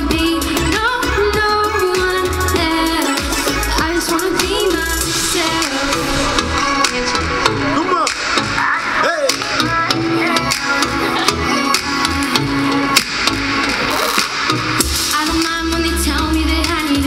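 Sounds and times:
woman singing: 0.0s - 7.5s, 8.5s - 13.4s, 15.0s - 17.0s
pop backing music with beat: 0.0s - 17.0s.

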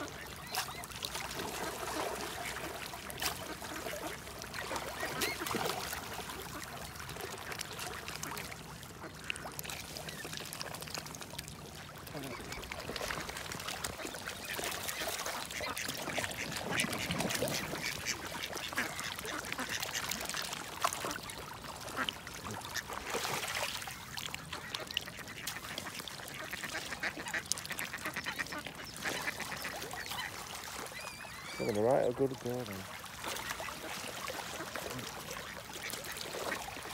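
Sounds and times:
bills dabbling and splashing: 0.0s - 36.9s
duck quacking: 15.4s - 20.1s.

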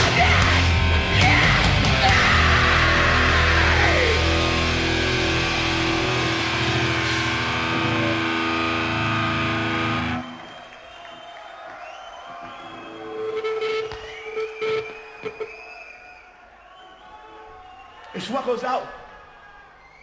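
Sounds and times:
live hardcore band playing: 0.0s - 10.3s.

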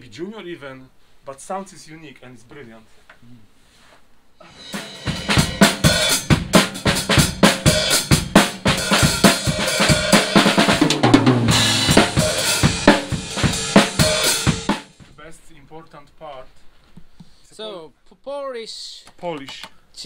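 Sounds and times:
drum kit playing fast groove: 4.4s - 15.0s
tom drum fill: 4.4s - 15.1s.

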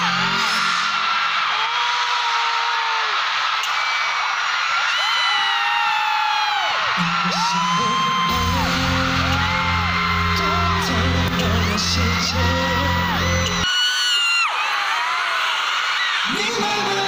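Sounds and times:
crowd screaming and cheering: 0.0s - 17.0s
intro music over pa: 8.3s - 13.6s.

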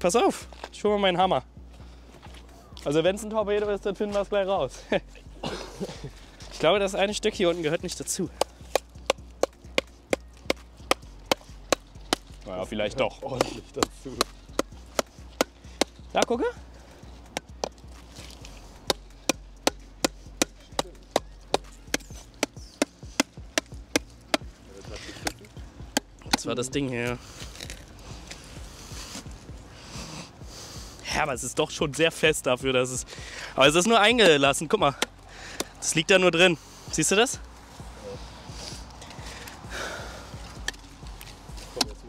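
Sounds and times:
faint low thumps: 5.0s - 31.6s
person breathing: 24.9s - 25.3s, 27.2s - 31.1s, 33.0s - 33.6s, 35.0s - 35.8s, 36.6s - 37.0s, 38.0s - 40.7s.

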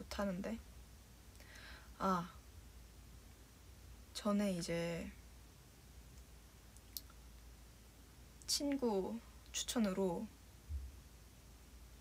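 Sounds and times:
faint low hum: 0.0s - 12.0s.

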